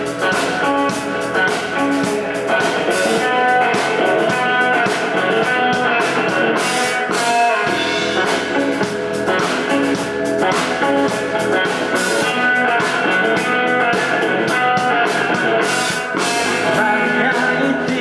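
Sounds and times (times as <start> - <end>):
live rock band instrumental: 0.0 - 18.0.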